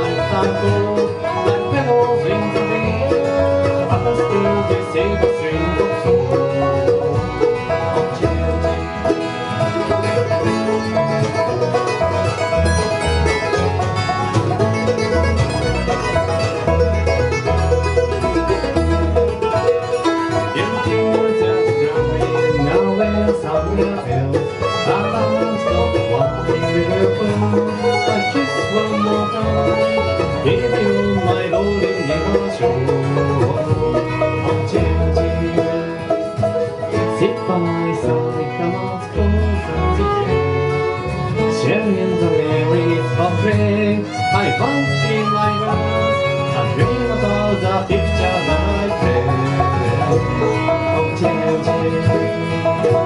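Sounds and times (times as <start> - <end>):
bluegrass band instrumental: 0.0 - 53.0.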